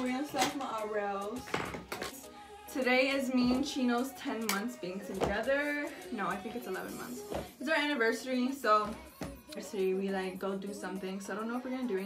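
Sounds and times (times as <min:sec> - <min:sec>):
woman's voice: 0:00.0 - 0:12.0.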